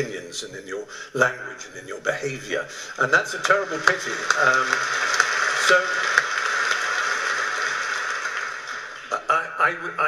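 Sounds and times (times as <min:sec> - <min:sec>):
audience applauding: 0:03.1 - 0:09.3.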